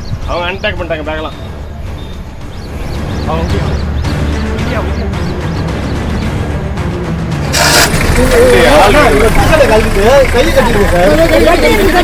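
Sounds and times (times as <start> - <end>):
short burst of noise: 7.5 - 8.4
people talking loudly: 7.7 - 12.0.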